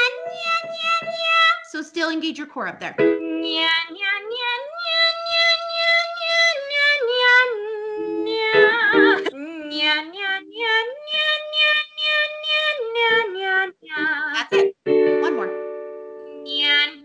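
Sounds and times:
woman singing vocal exercise: 3.0s - 14.7s, 16.4s - 17.0s.

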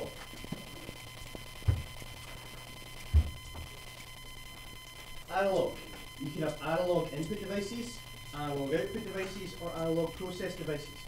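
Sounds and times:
low electrical hum with whine: 0.0s - 11.0s
dull thumps: 1.5s - 2.2s, 3.0s - 3.8s.

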